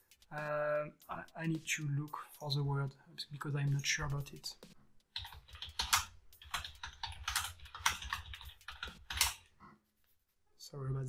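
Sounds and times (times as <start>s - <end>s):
typing on computer keyboard: 5.1s - 9.5s.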